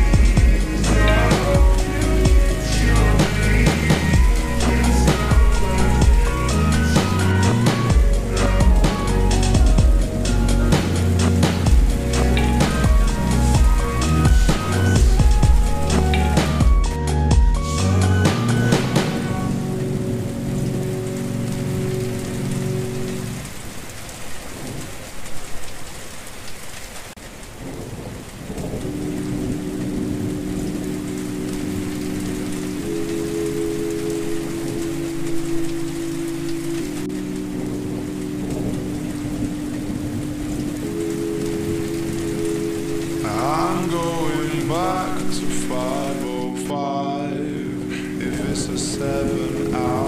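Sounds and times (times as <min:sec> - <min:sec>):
slowed reverb-heavy music chords: 0:00.0 - 0:23.8, 0:28.5 - 0:50.0
thunder rumbling: 0:00.0 - 0:25.3, 0:27.2 - 0:46.7, 0:47.4 - 0:50.0
steady rain: 0:00.0 - 0:50.0.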